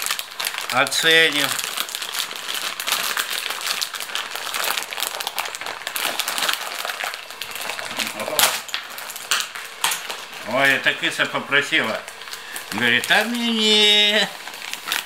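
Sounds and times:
plastic packet crinkling: 0.0s - 15.0s.

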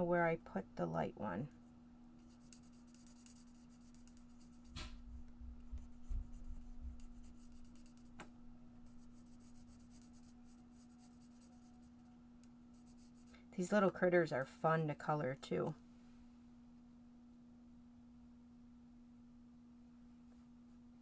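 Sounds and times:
marker nib scratching on card: 2.2s - 5.0s, 5.6s - 8.2s, 8.9s - 12.1s, 12.7s - 13.4s.

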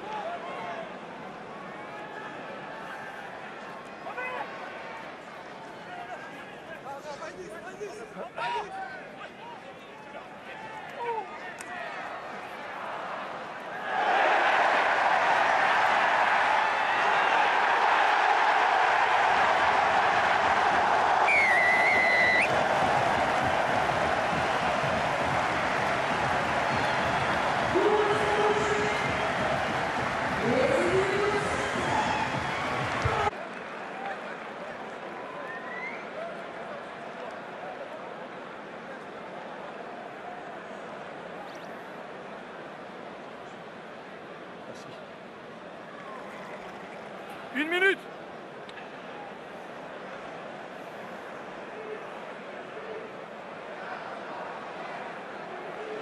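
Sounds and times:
stadium crowd cheering: 0.0s - 56.0s
whistle blowing: 21.3s - 22.5s.

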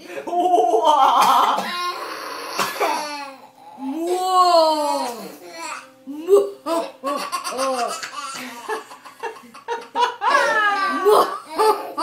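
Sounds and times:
toddler laughing: 6.7s - 12.0s.

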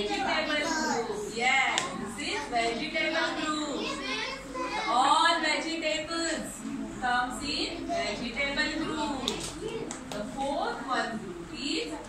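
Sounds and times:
young children talking and calling out: 0.0s - 5.6s, 6.6s - 10.4s.

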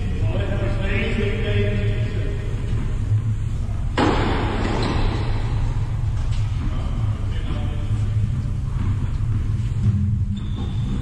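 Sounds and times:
low rumble of hall noise: 0.0s - 11.0s.

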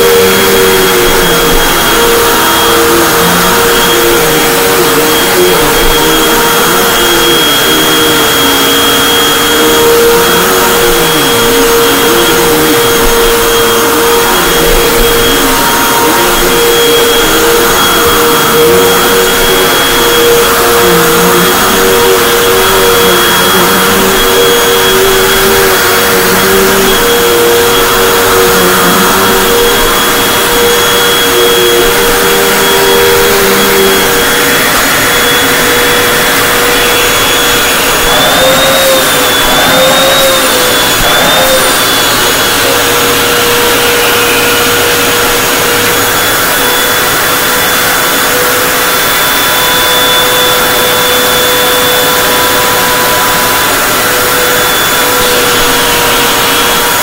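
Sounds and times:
vacuum cleaner motor whine: 0.0s - 57.0s
wavering second tone: 0.0s - 57.0s.

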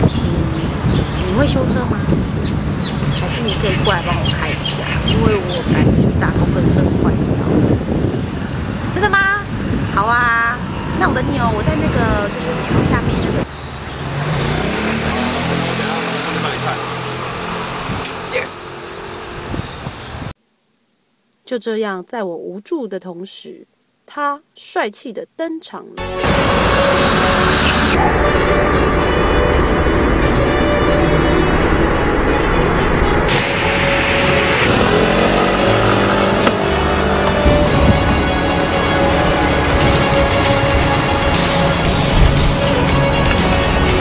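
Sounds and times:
car engine and road noise: 0.0s - 20.4s, 26.0s - 44.0s
background music: 26.0s - 44.0s
vehicle engine running: 26.0s - 44.0s
traffic hiss: 33.3s - 35.9s.

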